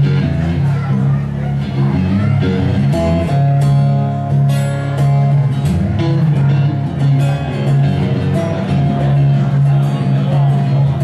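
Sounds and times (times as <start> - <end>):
guitars strummed: 0.0 - 11.0.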